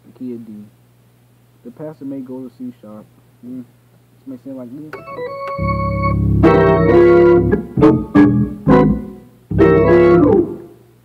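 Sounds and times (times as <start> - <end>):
gospel organ chords: 4.9 - 11.0
deep bass: 5.6 - 10.6.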